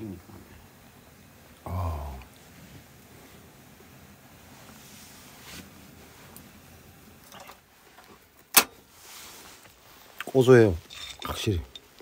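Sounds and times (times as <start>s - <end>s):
soft ticks of roasting peanuts: 1.5s - 3.2s, 9.5s - 12.0s.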